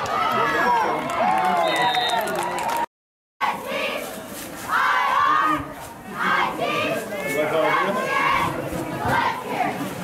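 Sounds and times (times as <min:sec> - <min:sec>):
crowd chatter: 0:03.4 - 0:10.0.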